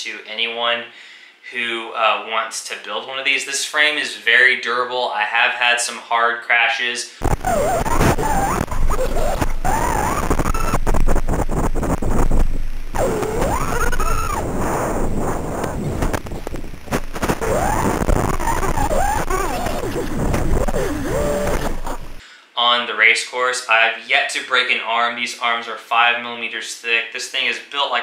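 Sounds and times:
loud rushing noise: 7.2s - 22.2s
motor whines: 7.2s - 22.2s.

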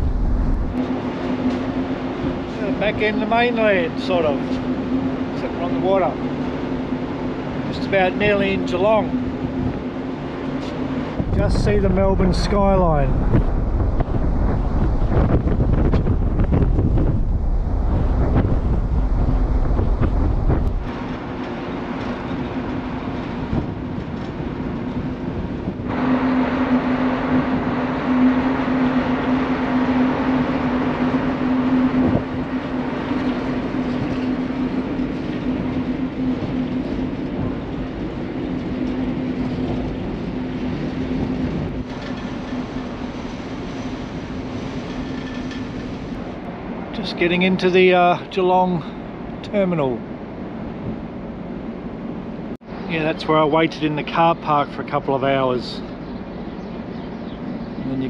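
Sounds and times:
wind rumbling on microphone: 0.0s - 54.5s
ferry engines droning: 0.0s - 58.0s
steady low hum: 0.0s - 58.0s.

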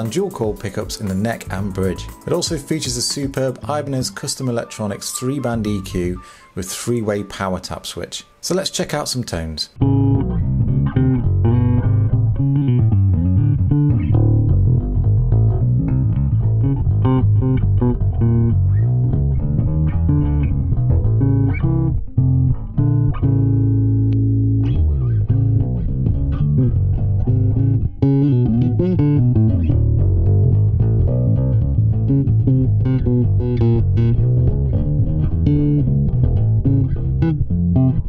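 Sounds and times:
electric bass plucked notes: 0.0s - 6.4s, 9.7s - 38.0s.

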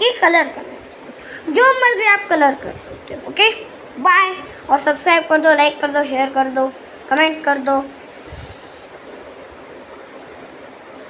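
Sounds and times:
room hiss: 0.0s - 11.0s.

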